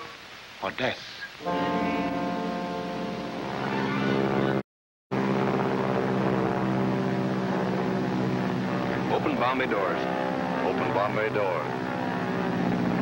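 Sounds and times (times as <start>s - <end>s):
propeller engines droning: 1.4s - 13.0s.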